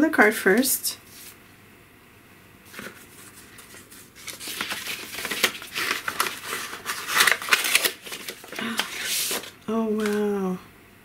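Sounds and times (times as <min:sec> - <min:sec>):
paper rustling and crinkling: 0:02.7 - 0:10.3.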